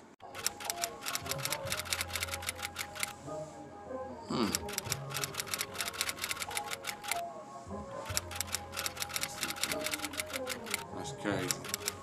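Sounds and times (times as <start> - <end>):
soft music: 0.0 - 12.0
keyboard typing clicks: 0.3 - 3.2, 4.5 - 7.2, 8.1 - 10.8, 11.4 - 12.0.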